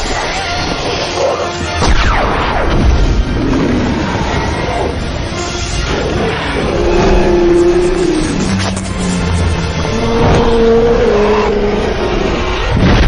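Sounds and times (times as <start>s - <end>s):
orchestral music: 0.0s - 13.0s
dragon rushing roar: 5.9s - 13.0s.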